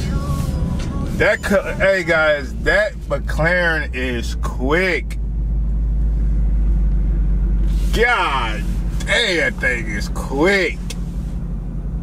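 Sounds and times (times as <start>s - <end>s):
car engine deep rumble: 0.0s - 12.0s.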